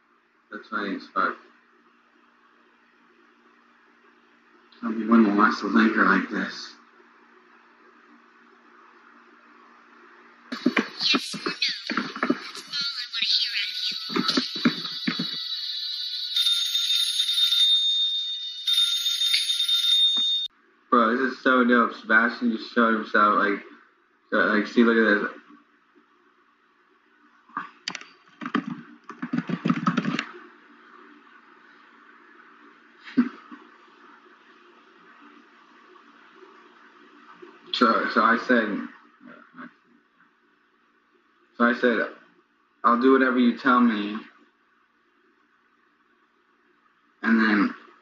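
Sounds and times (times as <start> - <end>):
high-pitched ringing tone: 13.6 - 20.5.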